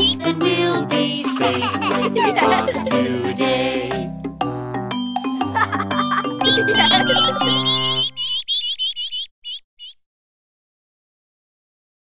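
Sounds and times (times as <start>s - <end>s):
jingle held notes: 1.4s - 8.0s
high bird chirps: 6.5s - 10.0s.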